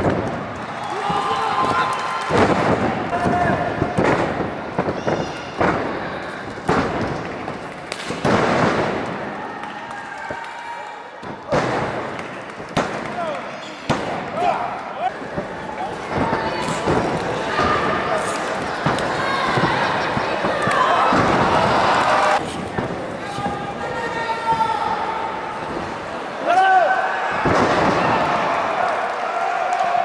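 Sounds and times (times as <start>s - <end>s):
crowd cheering: 0.0s - 4.0s, 8.9s - 13.6s, 14.3s - 22.5s, 23.3s - 30.0s.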